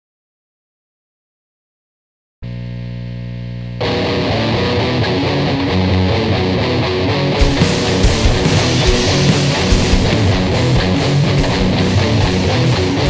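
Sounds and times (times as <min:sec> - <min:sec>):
punk rock band playing: 0:03.8 - 0:13.0
beat hits: 0:07.4 - 0:13.0.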